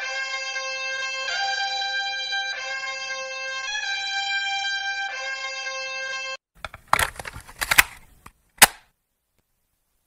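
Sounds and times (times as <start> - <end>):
sharp cracks and clicks: 6.6 - 8.9.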